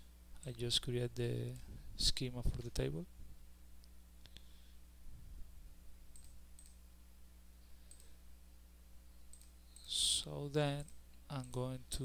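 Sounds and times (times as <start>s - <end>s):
low steady hum: 0.0s - 12.0s
computer mouse click: 6.1s - 6.8s, 7.9s - 8.1s, 9.3s - 9.9s.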